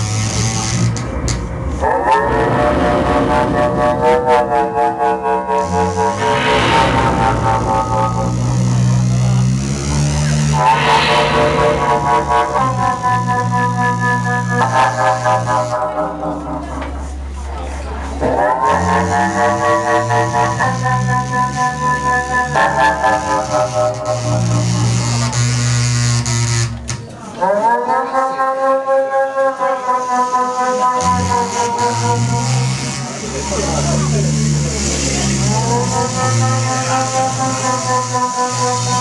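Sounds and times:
loud low drone: 0.0s - 15.6s
higher wailing sound: 1.8s - 9.3s, 10.5s - 14.0s
high noise hiss: 10.4s - 13.7s.

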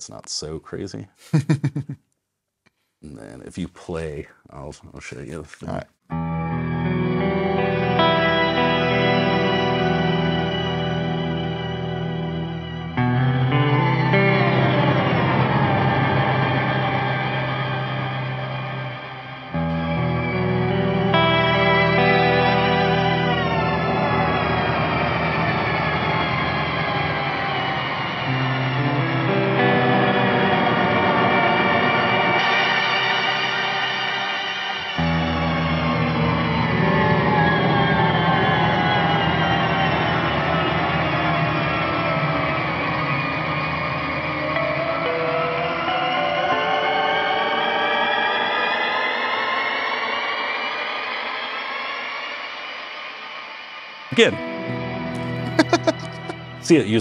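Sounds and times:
electric guitar chords with reverb: 6.1s - 49.2s, 54.1s - 56.8s.

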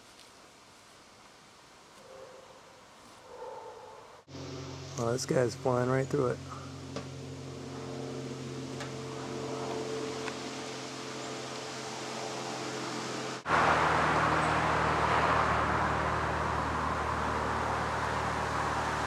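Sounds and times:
jet aircraft hum and roar: 4.2s - 19.0s.

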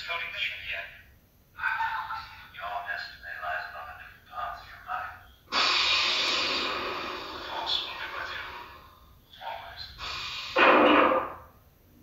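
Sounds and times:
loud hissing respirator breath: 5.5s - 9.2s, 9.9s - 10.9s.

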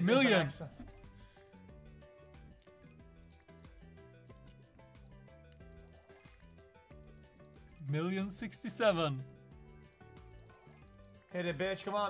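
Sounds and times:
bouncy game music: 0.0s - 12.0s.

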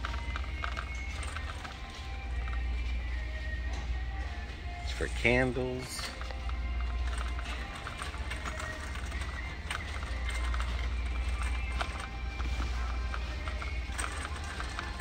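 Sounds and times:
shopping cart wheels rattling: 0.0s - 3.4s, 4.9s - 15.0s
background music over speakers: 0.0s - 15.0s.

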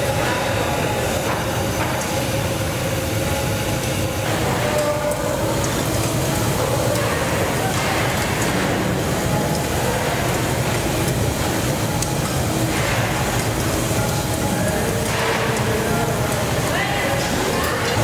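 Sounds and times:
gas burners roaring: 0.0s - 18.0s
kitchen bustle: 0.0s - 18.0s.

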